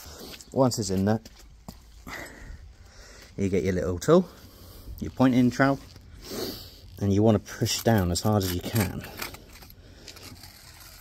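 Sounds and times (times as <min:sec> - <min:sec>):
trowel scraping gritty compound: 0:05.6 - 0:11.0.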